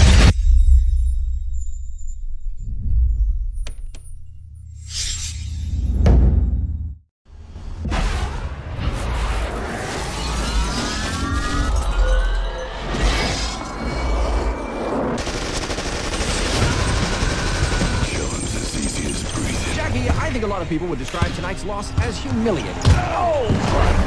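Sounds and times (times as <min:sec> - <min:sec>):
trailer soundtrack music: 0:00.0 - 0:24.0
gunfire-like bursts and booms: 0:15.2 - 0:20.4.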